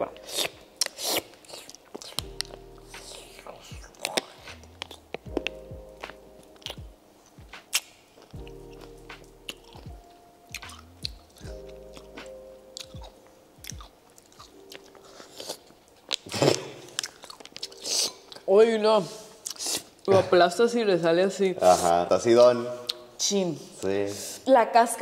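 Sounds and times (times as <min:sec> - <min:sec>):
faint background music: 0:00.0 - 0:25.0
wet chewing of pickle: 0:00.1 - 0:18.5, 0:19.4 - 0:20.1
crunches of pickle skin: 0:00.2 - 0:05.5.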